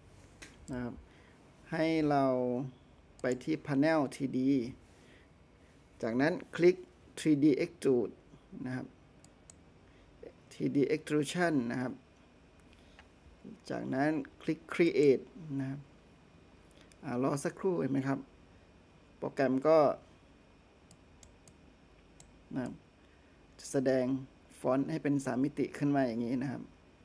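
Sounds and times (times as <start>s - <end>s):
computer mouse clicks: 9.2s - 9.6s, 20.9s - 22.8s.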